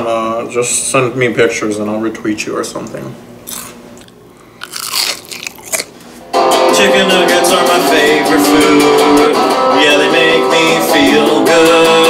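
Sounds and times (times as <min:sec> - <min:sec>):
electric guitar strummed chords: 0:06.3 - 0:12.0.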